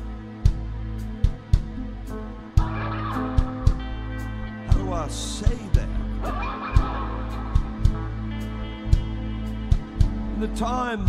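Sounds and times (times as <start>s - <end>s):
electric guitar sustained notes: 1.8s - 11.0s
drum hits: 2.6s - 8.2s.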